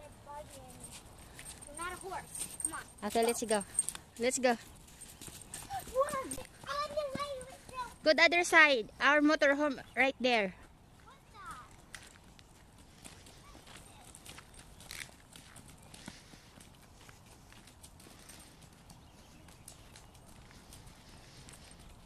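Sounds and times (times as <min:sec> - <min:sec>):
footsteps crunching on gravel: 0:00.0 - 0:08.2, 0:10.9 - 0:22.0.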